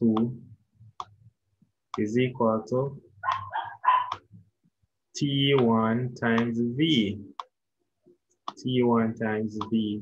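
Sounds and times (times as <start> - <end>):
dog barking: 3.2 - 4.2.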